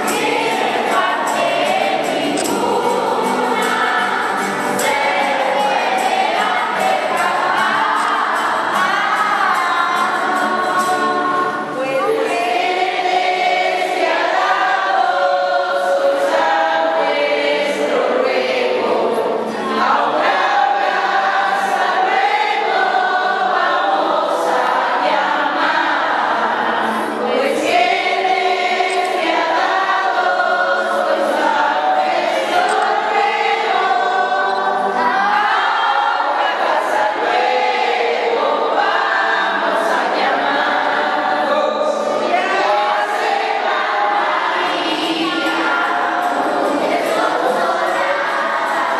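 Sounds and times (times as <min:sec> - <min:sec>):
children and adults singing: 0:00.0 - 0:48.9.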